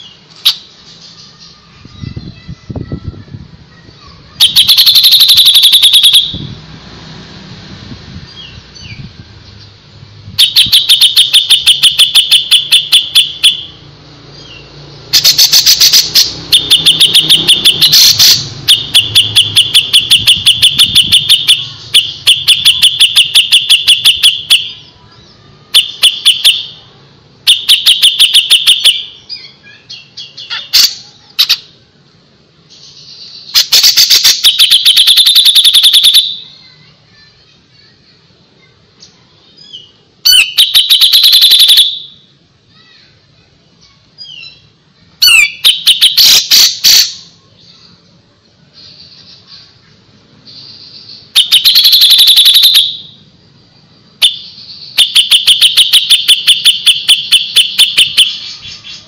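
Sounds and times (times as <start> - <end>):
bulbul singing rapid high notes: 4.3 - 6.8, 10.3 - 25.0, 25.7 - 29.3, 33.4 - 36.7, 40.1 - 42.3, 44.4 - 47.4, 50.4 - 53.2, 54.2 - 59.0.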